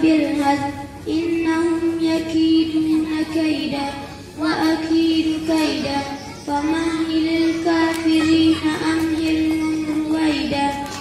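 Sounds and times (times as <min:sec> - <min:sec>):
girl chanting into microphone: 0:00.0 - 0:11.0.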